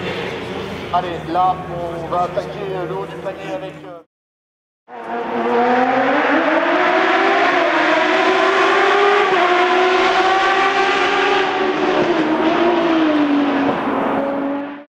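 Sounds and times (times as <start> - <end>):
race car engine at high revs: 4.9 - 14.9.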